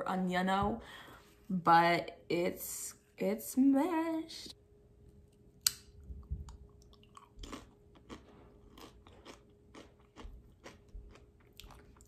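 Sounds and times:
person chewing crunchy chip: 0:06.7 - 0:12.0.

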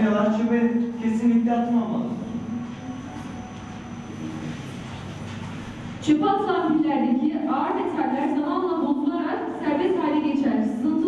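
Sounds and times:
faint high whine: 0:00.0 - 0:06.8
low room noise rumble: 0:00.0 - 0:11.0.

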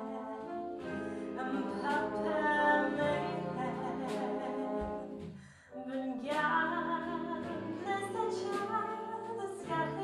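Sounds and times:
big band jazz ballad: 0:00.0 - 0:10.0.

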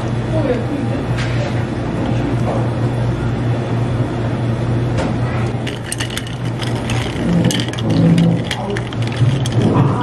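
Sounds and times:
steady low hum: 0:00.0 - 0:10.0
ice and spoon clinking glass: 0:05.7 - 0:10.0.

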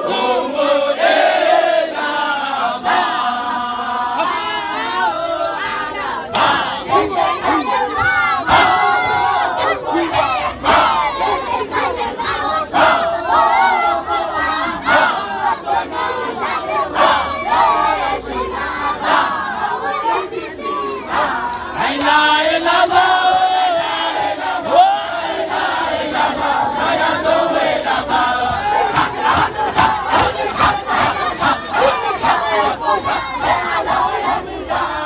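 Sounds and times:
men chanting together: 0:00.0 - 0:35.0.

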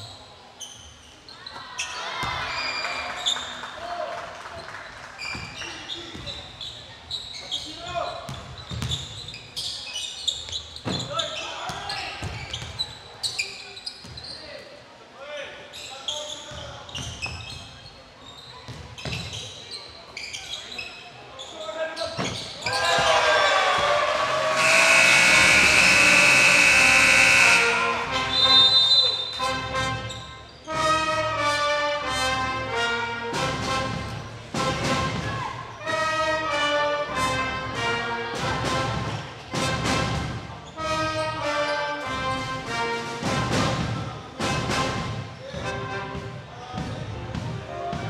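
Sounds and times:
sneaker squeaks: 0:00.0 - 0:03.6, 0:05.2 - 0:14.7, 0:15.7 - 0:23.2, 0:28.3 - 0:30.8
players shouting and cheering: 0:01.7 - 0:04.2, 0:22.6 - 0:28.4
basketball bouncing on wooden floor: 0:08.3 - 0:09.0
loud steady horn tone: 0:24.5 - 0:28.7.

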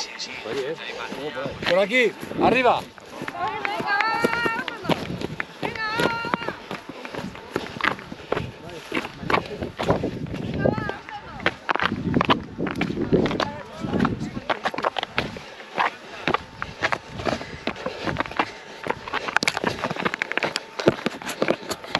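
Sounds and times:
footsteps on rocky ground: 0:00.2 - 0:21.9.

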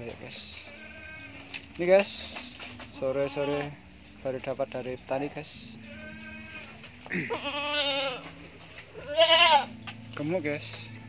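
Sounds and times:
young goat bleating: 0:00.6 - 0:01.5, 0:03.0 - 0:03.8, 0:05.8 - 0:09.8.

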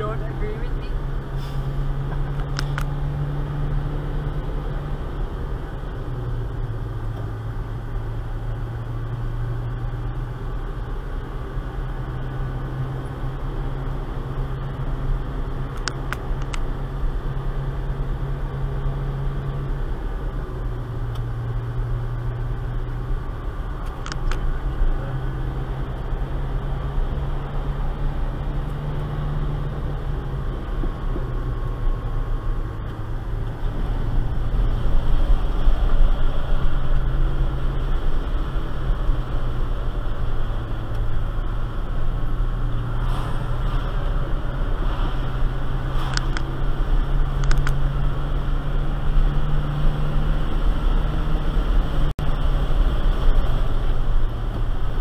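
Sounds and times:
car engine drone: 0:00.0 - 0:55.0
tyre and road noise: 0:00.0 - 0:55.0.

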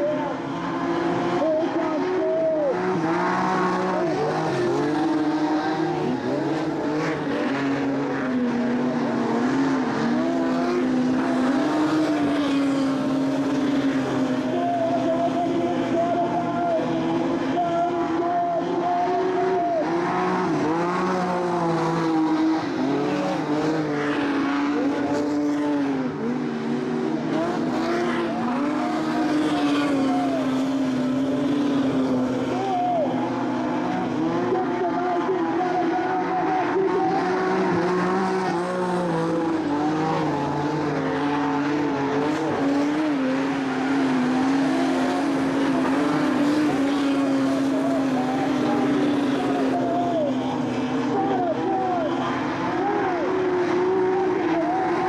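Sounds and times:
race car engines revving: 0:00.0 - 0:55.0.

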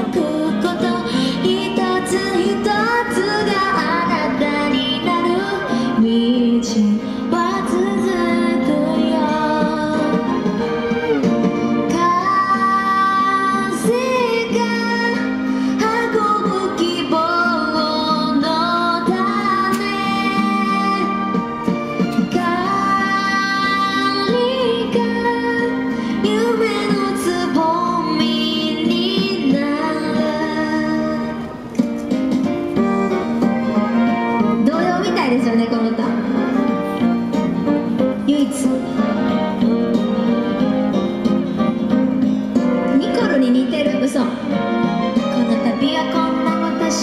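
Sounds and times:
woman singing pop song: 0:00.0 - 0:31.7, 0:34.4 - 0:36.8, 0:37.6 - 0:40.0, 0:42.6 - 0:47.0
instrumental accompaniment: 0:00.0 - 0:47.0.

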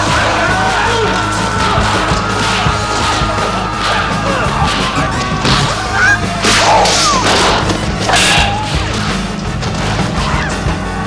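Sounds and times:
fight soundtrack noise: 0:00.0 - 0:11.0
shrill battle cries: 0:00.0 - 0:11.0.

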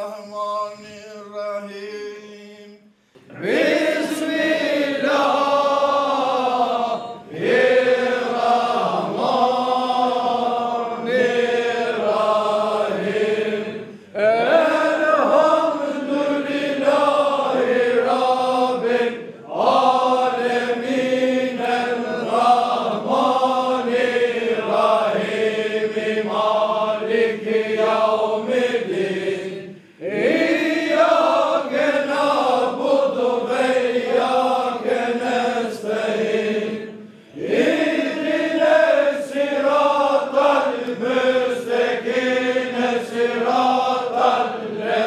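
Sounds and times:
men chanting in unison: 0:00.0 - 0:45.0.

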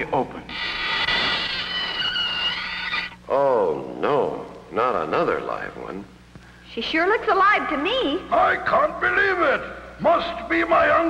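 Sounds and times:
cartoon lid creaking squeal: 0:00.5 - 0:03.2.

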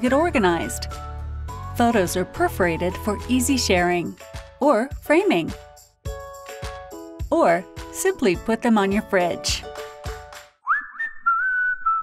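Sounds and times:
person whistling: 0:10.6 - 0:12.0.

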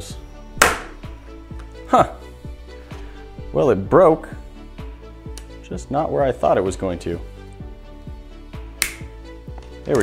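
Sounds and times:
background music with steady beat: 0:00.0 - 0:10.0
plastic sheet snapping: 0:08.8 - 0:09.0.

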